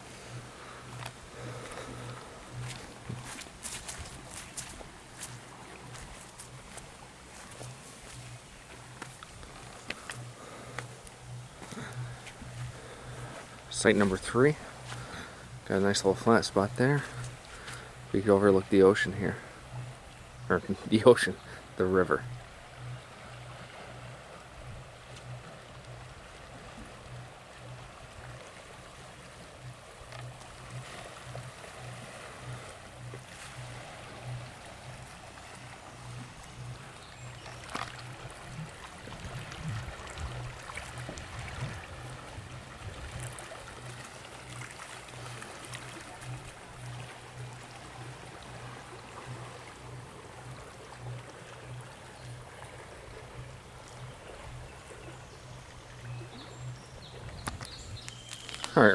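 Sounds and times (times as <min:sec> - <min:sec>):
low pulsing hum: 0:00.0 - 0:58.7
river water noise: 0:00.0 - 0:58.9
wind: 0:00.0 - 0:58.9
wind buffeting microphone: 0:38.0 - 0:43.5, 0:56.5 - 0:58.1.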